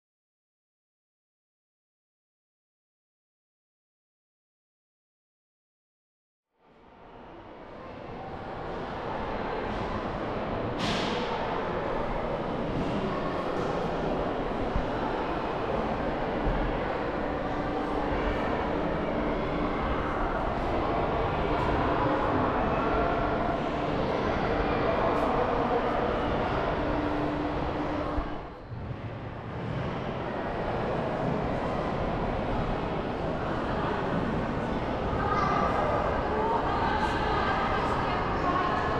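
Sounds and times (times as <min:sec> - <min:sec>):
murmur of many voices: 0:06.7 - 0:38.9.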